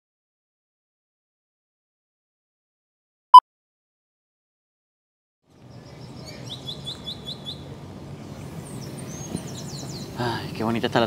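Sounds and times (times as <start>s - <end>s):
small birds chirping: 5.5s - 11.0s.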